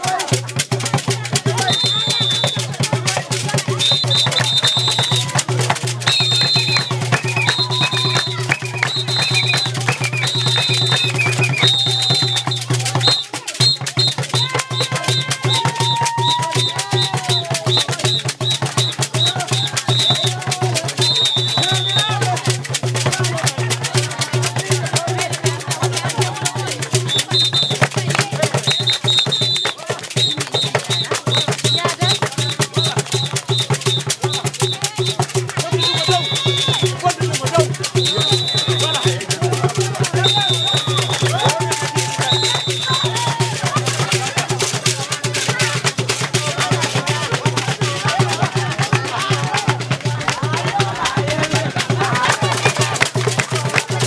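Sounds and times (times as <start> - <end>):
hand drum fast rhythm: 0.0 - 54.0
voices calling out: 0.0 - 54.0
shrill high-pitched notes: 1.5 - 2.8, 3.7 - 22.2, 27.0 - 37.1, 37.8 - 43.5.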